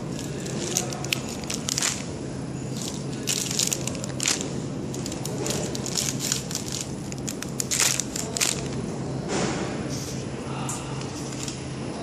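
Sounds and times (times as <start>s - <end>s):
plastic film bags crinkling: 0.0s - 8.9s
packing machine humming: 0.0s - 10.1s.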